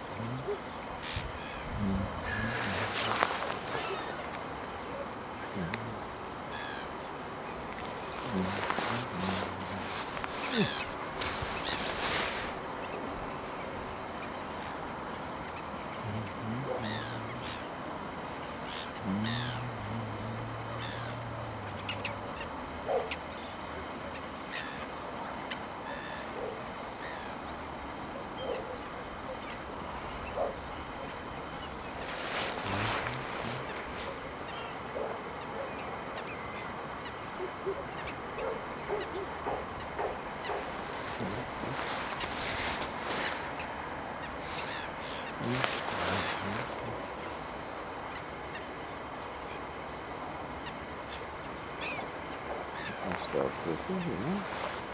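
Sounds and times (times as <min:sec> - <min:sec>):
steady background hiss: 0:00.0 - 0:54.9
wetland birds calling: 0:00.0 - 0:54.9
rushes of noise: 0:31.8 - 0:34.4.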